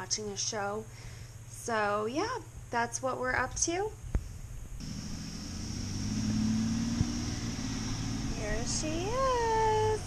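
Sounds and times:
bus engine rumbling: 0:04.8 - 0:10.0.

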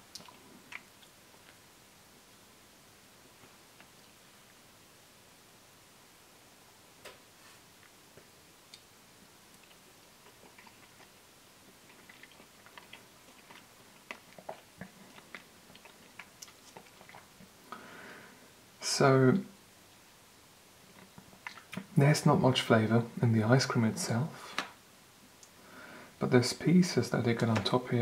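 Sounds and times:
person eating with mouth smacks: 0:00.0 - 0:01.6, 0:09.5 - 0:17.6, 0:21.0 - 0:21.9.

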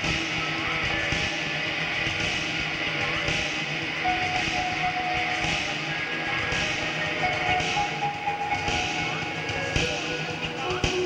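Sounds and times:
held steady note: 0:00.0 - 0:11.0
live rock band playing: 0:00.2 - 0:11.0.

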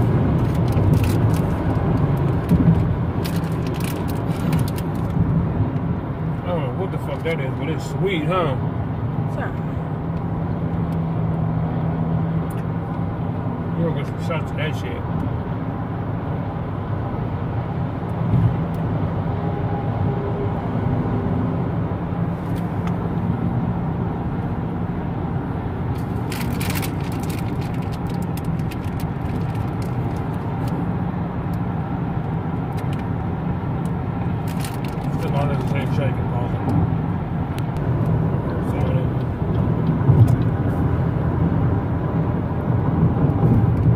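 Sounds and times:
car road and engine noise: 0:00.0 - 0:43.9.

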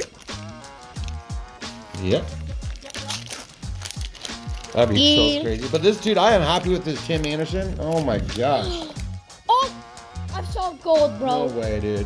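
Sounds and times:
music with deep bass line: 0:00.0 - 0:12.0.

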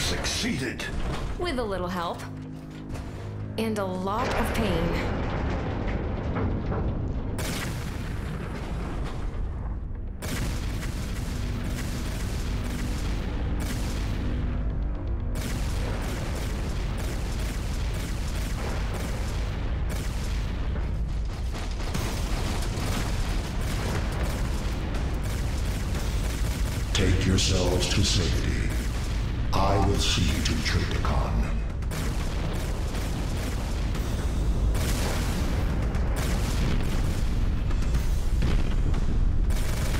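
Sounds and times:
continuous low rumble: 0:00.0 - 0:39.9
dramatic background music: 0:00.0 - 0:39.9.

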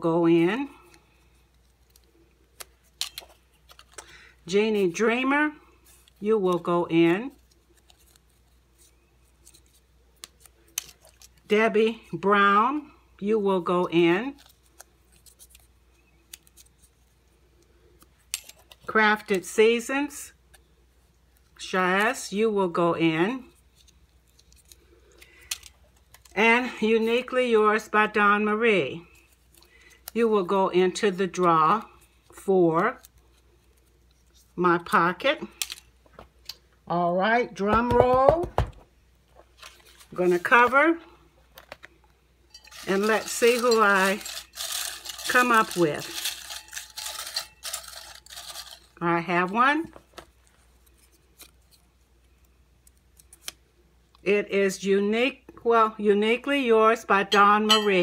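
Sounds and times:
paper rustling: 0:07.1 - 0:11.5, 0:39.3 - 0:40.8, 0:42.7 - 0:49.0
person speaking: 0:36.8 - 0:38.7, 0:40.0 - 0:41.2, 0:42.7 - 0:46.5, 0:57.1 - 0:58.0
handling sounds: 0:41.5 - 0:49.0
paper slips clicking in glass bowl: 0:42.6 - 0:48.9.

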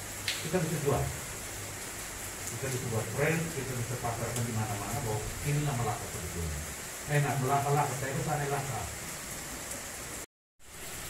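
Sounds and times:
room background hiss: 0:00.0 - 0:11.0.

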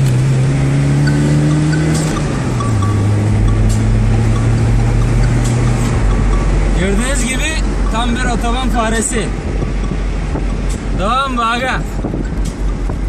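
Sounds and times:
car engine under full throttle: 0:00.0 - 0:13.0.

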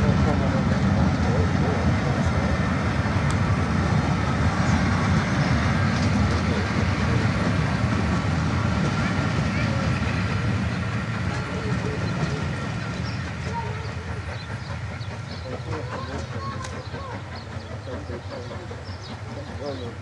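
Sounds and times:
coaches rumbling over rails: 0:00.0 - 0:20.0
steam locomotive exhaust: 0:00.0 - 0:20.0.

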